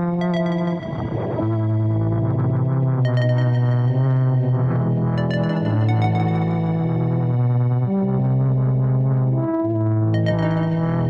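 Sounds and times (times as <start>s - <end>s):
electronic music with held synth tones: 0.0s - 11.0s.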